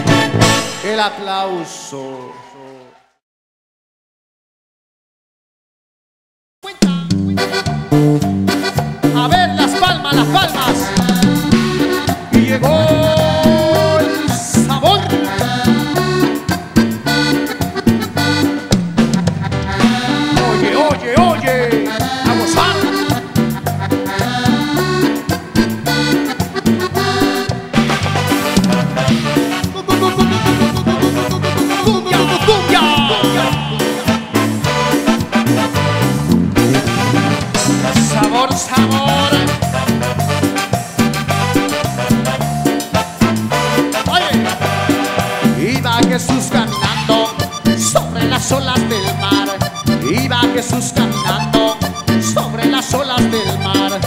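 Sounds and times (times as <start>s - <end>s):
live band playing latin music: 0.0s - 2.5s, 6.6s - 54.0s.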